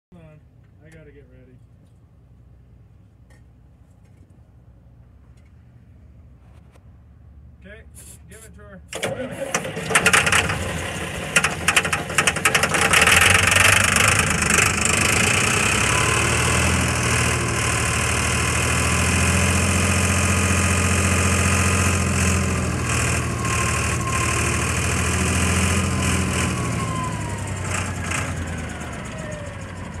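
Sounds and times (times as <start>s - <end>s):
diesel engine running: 7.2s - 30.0s.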